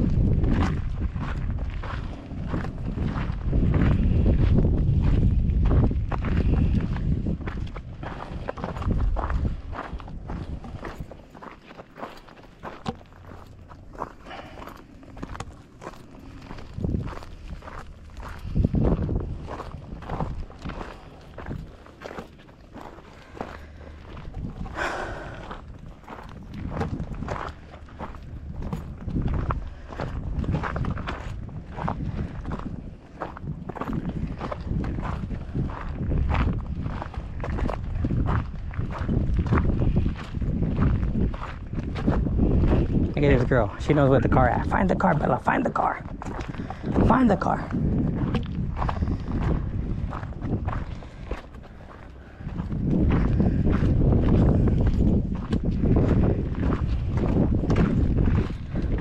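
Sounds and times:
footsteps on gravel: 0.0s - 59.0s
wind rumbling on microphone: 0.0s - 59.0s.

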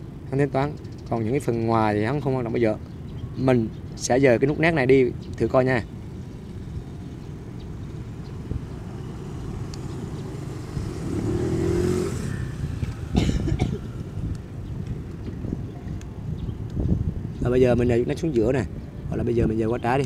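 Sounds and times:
traffic rumble: 0.0s - 20.0s
engine rising in pitch: 6.9s - 13.2s.

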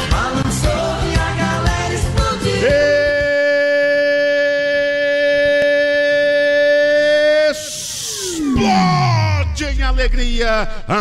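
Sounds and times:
burst of hiss: 7.6s - 8.5s.

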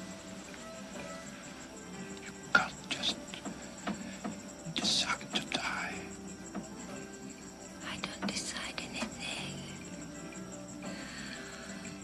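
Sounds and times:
soft sustained film music: 0.0s - 12.0s
breathy whispering: 1.3s - 6.2s, 7.8s - 9.8s, 10.8s - 12.0s.

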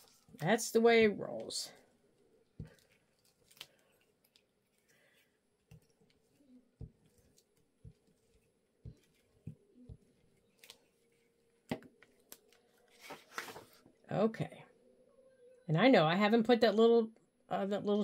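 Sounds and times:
paper rustling and tapping: 5.6s - 10.9s, 11.6s - 13.9s.

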